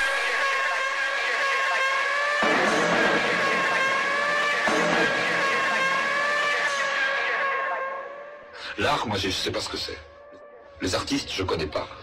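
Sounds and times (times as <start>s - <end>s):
swell of noise: 0.0s - 8.0s.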